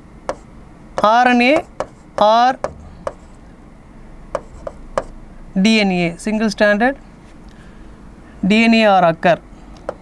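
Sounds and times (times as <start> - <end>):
pen scraping on writing board: 1.6 - 3.4, 4.3 - 5.1.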